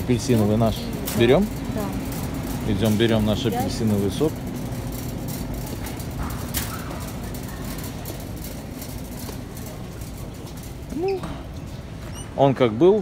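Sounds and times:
shopping cart rolling on concrete: 0.0 - 13.0
light rattles and clicks: 0.1 - 11.9.

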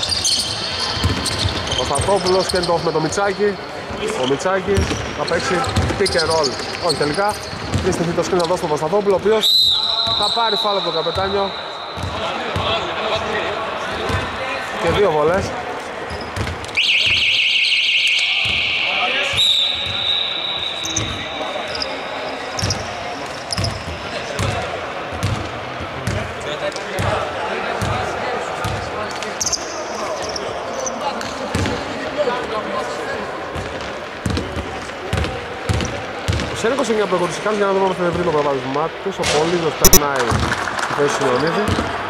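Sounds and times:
players' voices in a large hall: 0.0 - 42.0
basketball bouncing on wooden court: 0.8 - 2.1, 4.8 - 8.1, 12.0 - 12.8, 16.2 - 17.2, 18.4 - 18.7, 20.9 - 21.2, 23.5 - 26.3, 33.6 - 36.6.

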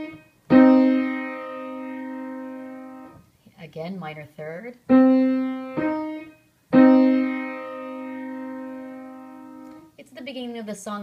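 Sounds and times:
piano playing minor third: 0.0 - 3.2, 4.9 - 9.8.

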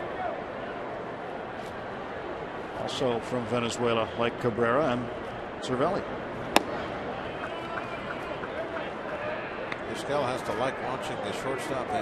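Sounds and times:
murmur of crowd: 0.0 - 12.0
baseball popping into mitt: 6.5 - 6.9.

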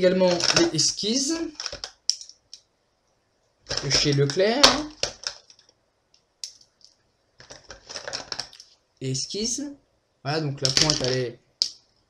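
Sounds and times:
plastic pens clicking and clattering: 0.3 - 0.7, 1.5 - 2.6, 3.7 - 5.7, 7.4 - 8.7, 10.6 - 11.8.

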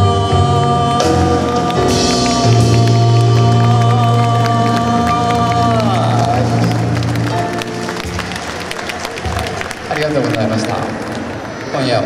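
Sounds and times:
man singing long note: 0.0 - 7.3
jazz combo sustained chord: 0.0 - 8.7
audience clapping and cheering: 1.0 - 12.0.

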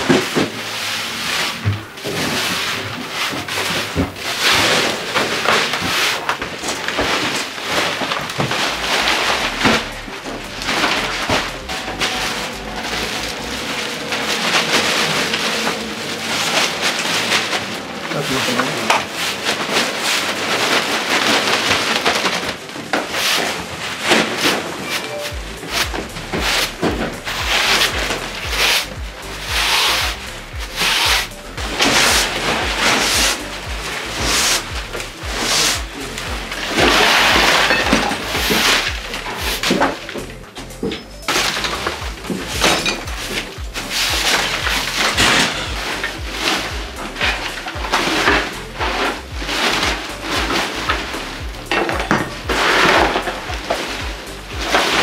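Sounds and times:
broom sweeping tatami mats: 0.0 - 55.0
plastic garbage bag rustling: 0.0 - 55.0.

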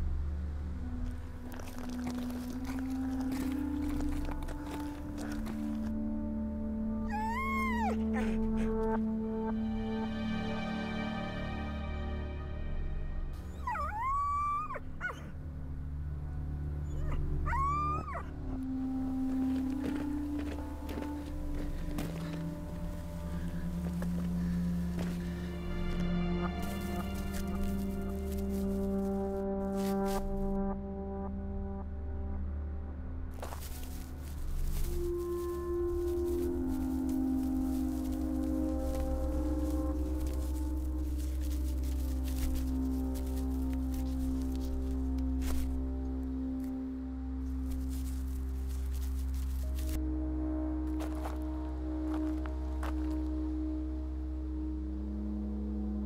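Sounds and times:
film music with held notes: 0.0 - 56.0
dog whining: 7.0 - 8.9, 13.5 - 15.3, 16.8 - 18.6.

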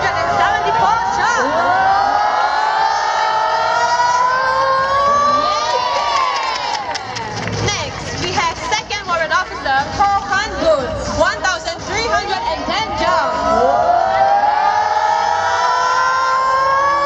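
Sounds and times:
crowd cheering and screaming: 0.0 - 7.5, 12.4 - 17.0.

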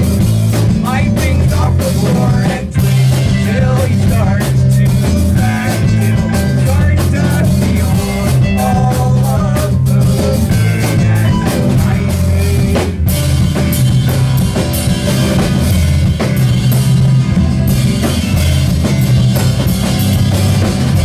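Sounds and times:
drum kit steady beat: 0.0 - 21.0
live rock band playing: 0.0 - 21.0.

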